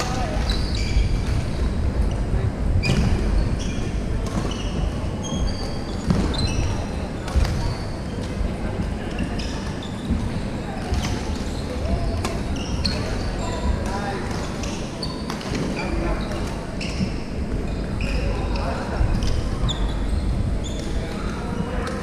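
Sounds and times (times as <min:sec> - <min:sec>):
indistinct chatter: 0:00.0 - 0:22.0
sneakers squeaking on wooden court: 0:00.1 - 0:02.2, 0:02.8 - 0:08.4, 0:10.8 - 0:21.4.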